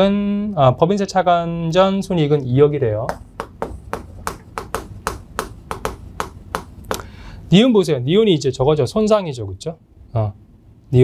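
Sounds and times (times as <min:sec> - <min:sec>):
chalk tapping on chalkboard: 0:03.1 - 0:07.1.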